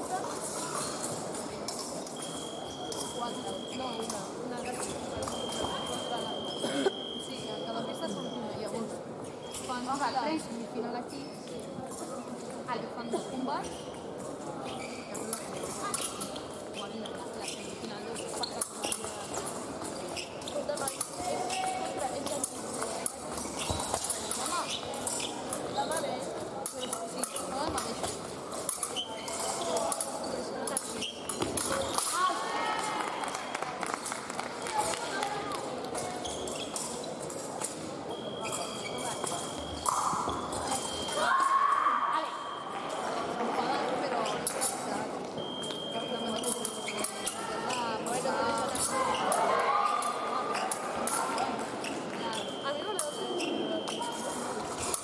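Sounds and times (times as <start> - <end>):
hubbub of voices: 0.0 - 55.0.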